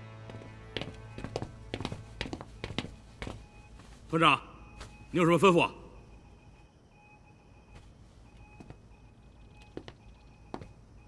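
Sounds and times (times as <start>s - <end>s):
faint steady tone: 2.4s - 11.0s.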